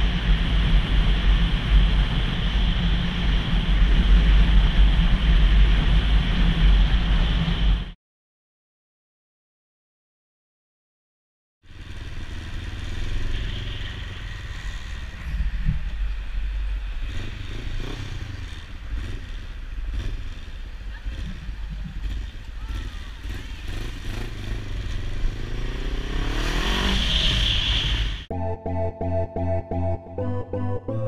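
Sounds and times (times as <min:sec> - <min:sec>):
motorcycle engine revving: 0:11.7 - 0:28.3.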